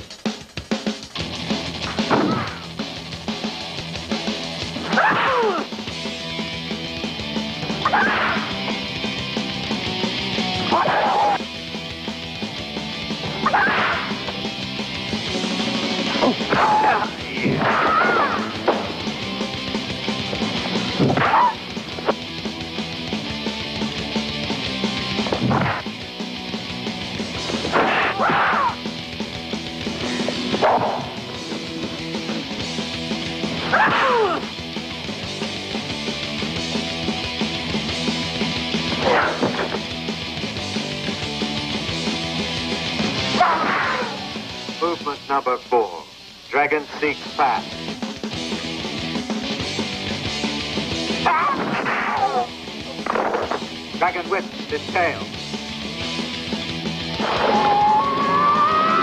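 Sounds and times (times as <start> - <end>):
background music: 0.0 - 59.0.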